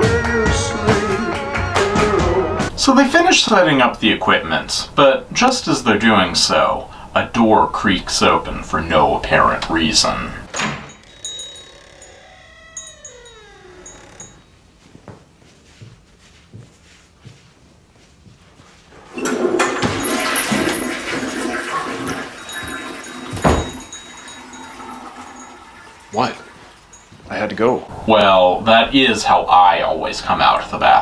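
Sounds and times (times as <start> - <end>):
door creaking open: 8.3 - 14.7, 19.0 - 28.1
toilet flush rushing water: 19.1 - 27.0.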